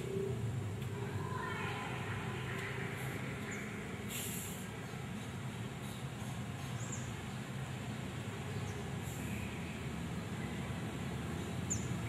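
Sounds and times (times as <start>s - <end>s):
short high hiss: 4.1s - 4.6s.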